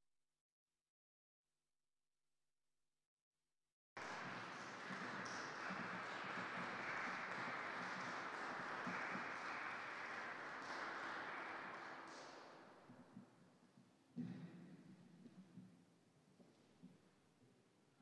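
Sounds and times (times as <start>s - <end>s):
audience applause: 4.0s - 12.6s.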